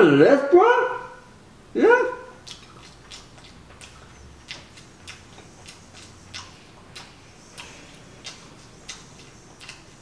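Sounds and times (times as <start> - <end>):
man chewing loudly: 1.9 - 10.0.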